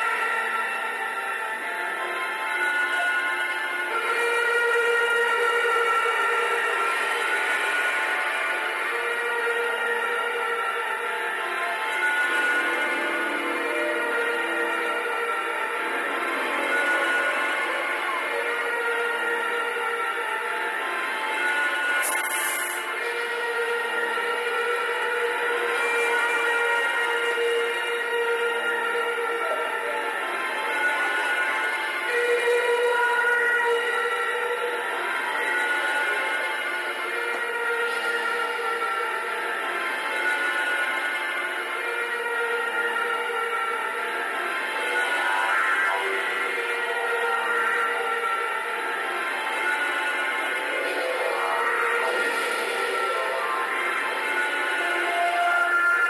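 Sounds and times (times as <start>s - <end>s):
brief hiss: 22.0s - 22.9s.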